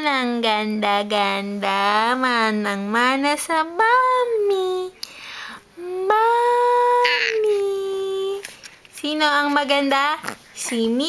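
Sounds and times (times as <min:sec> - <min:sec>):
baby cooing: 0:06.8 - 0:07.6.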